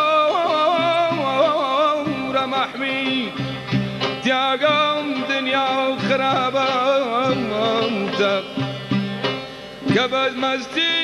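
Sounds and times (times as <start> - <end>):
man singing: 0.0 - 8.9, 9.8 - 11.0
folk music ensemble: 0.0 - 11.0
santur melody: 0.0 - 11.0.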